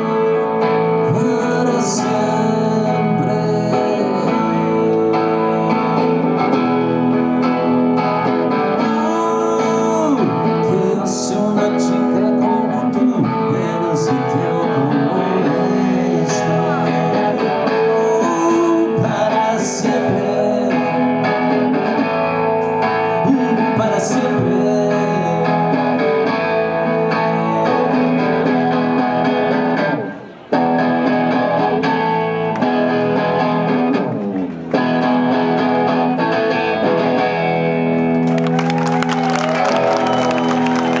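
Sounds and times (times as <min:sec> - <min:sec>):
acoustic guitar strumming chords: 0:00.0 - 0:38.2
audience applause and cheering: 0:37.9 - 0:41.0.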